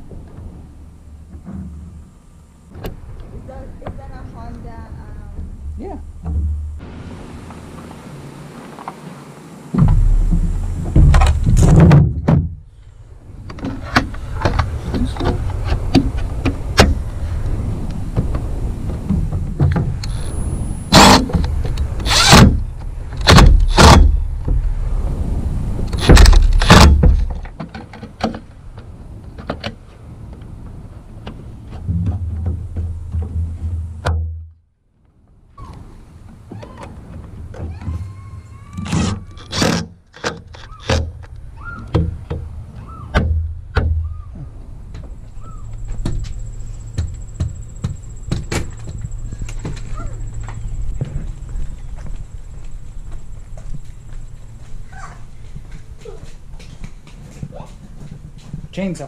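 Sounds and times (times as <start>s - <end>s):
impact driver driving screws: 22.0s - 22.6s.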